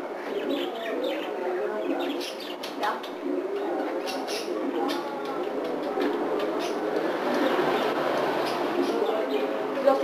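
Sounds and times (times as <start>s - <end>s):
birds cooing: 0.1s - 9.6s
birds chirping: 0.2s - 10.0s.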